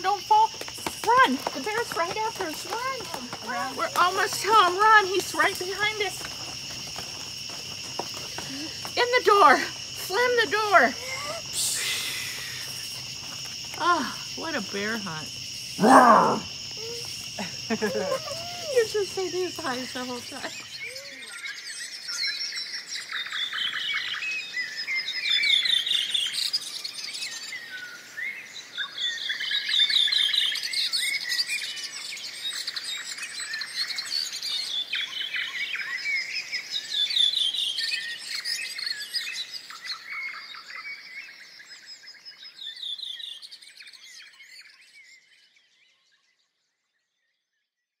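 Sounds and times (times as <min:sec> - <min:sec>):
birds chirping and trilling: 0:00.0 - 0:47.3.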